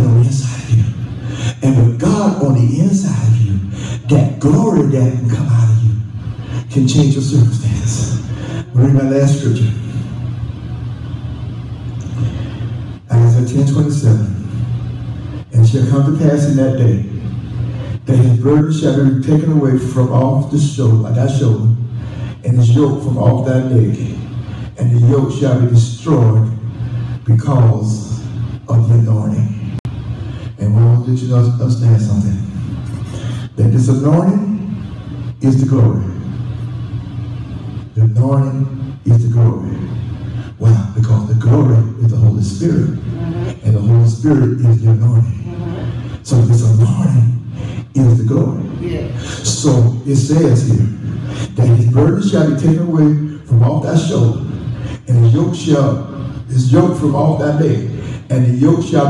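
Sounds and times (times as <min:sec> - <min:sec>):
person speaking: 0:00.0 - 0:10.7, 0:30.4 - 0:36.7, 0:37.8 - 0:59.0
steady low hum: 0:00.0 - 0:59.0.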